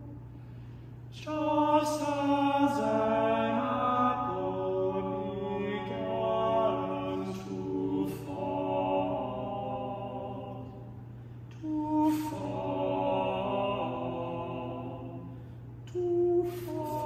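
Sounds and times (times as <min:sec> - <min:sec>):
men singing in harmony: 0:01.2 - 0:10.9, 0:11.6 - 0:15.3.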